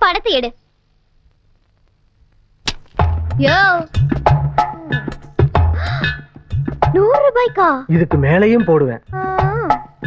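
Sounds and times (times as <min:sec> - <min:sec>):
quiet film soundtrack: 0:00.1 - 0:10.0.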